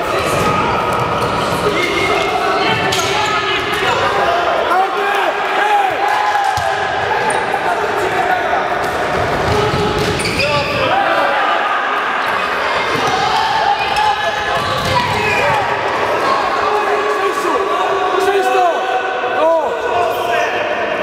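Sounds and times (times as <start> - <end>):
players shouting in hall: 0.0 - 21.0
ball bouncing on hall floor: 8.8 - 10.8, 14.5 - 15.7.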